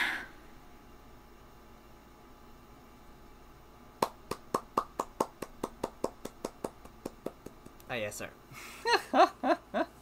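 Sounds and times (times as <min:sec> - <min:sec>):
person clapping hands: 0:04.0 - 0:07.9.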